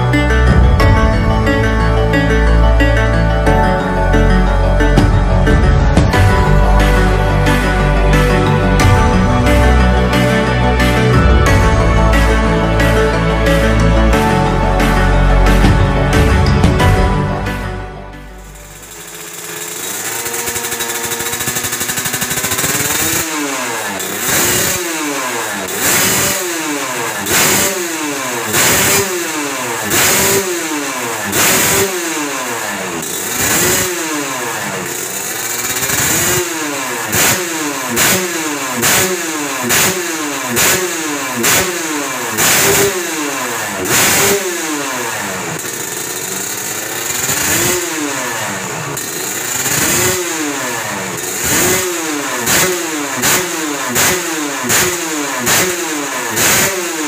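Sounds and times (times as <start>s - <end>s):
two-stroke motorcycle engine revving: 0.0s - 57.0s.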